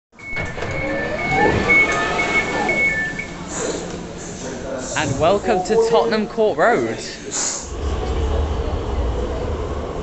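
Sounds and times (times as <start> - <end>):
train door warning beeps: 0.1 - 3.8.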